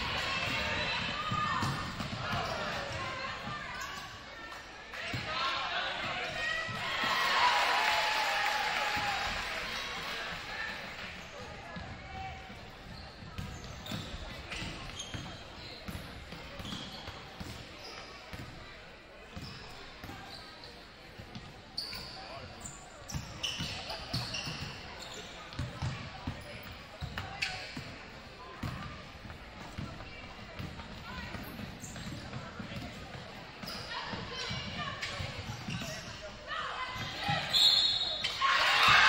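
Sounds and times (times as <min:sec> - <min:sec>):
sneakers squeaking: 0:00.0 - 0:07.2, 0:10.6 - 0:39.0.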